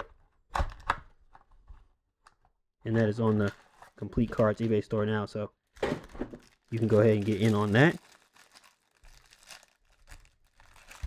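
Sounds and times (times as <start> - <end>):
plastic wrapper crinkling and tearing: 3.2 - 4.6, 5.6 - 11.0.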